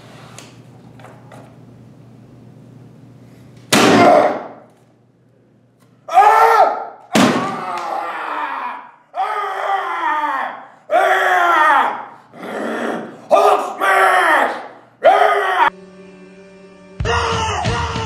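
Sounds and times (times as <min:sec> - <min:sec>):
man yelling: 0:06.1 - 0:12.2, 0:13.3 - 0:15.7, 0:17.0 - 0:18.0.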